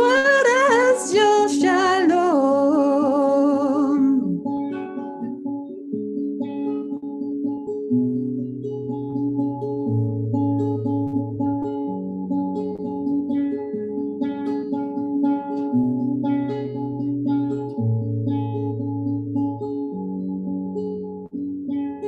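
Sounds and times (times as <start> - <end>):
woman singing with vibrato: 0.0 - 4.5
acoustic guitar playing: 0.0 - 22.0.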